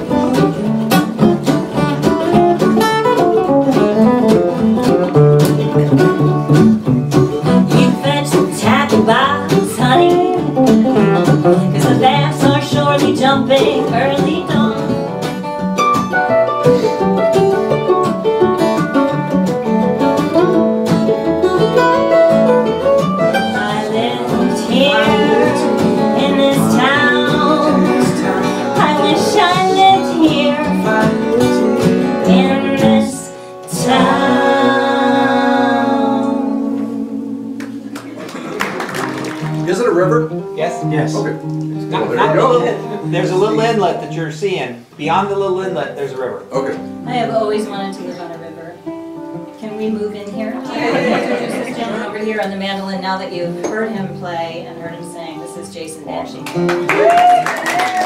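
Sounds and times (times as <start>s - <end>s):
mandolin: 0.0s - 44.4s, 45.8s - 57.1s
acoustic guitars: 0.0s - 58.0s
people singing: 23.9s - 38.6s.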